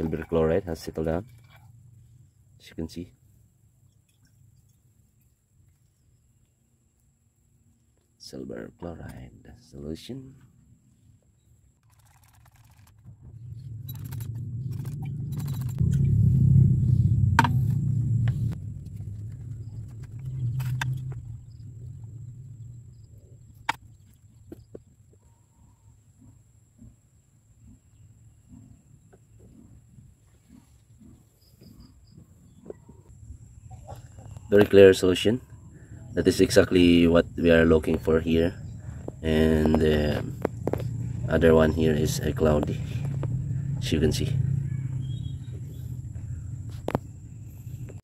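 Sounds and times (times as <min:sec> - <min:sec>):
liquid pouring into funnel: 0:11.8 - 0:13.1.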